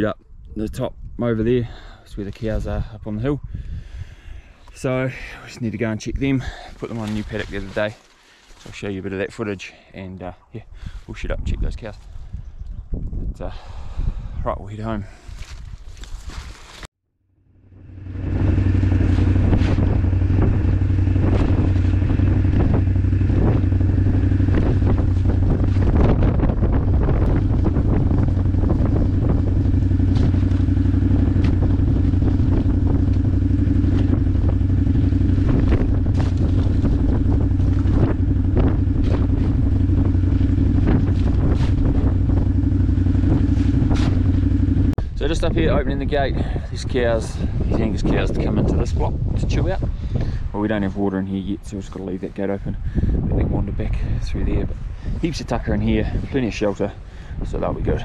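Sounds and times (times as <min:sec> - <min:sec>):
farm vehicle engine running: 0:17.4 - 0:50.9.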